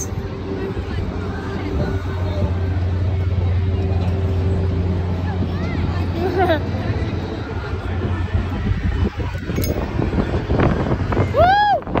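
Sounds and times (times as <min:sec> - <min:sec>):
faint voices: 0:00.0 - 0:11.5
low mechanical hum of machinery: 0:00.0 - 0:12.0.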